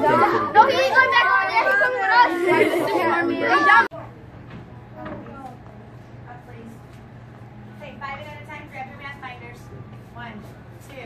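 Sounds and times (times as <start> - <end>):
children chattering excitedly: 0.0 - 4.2.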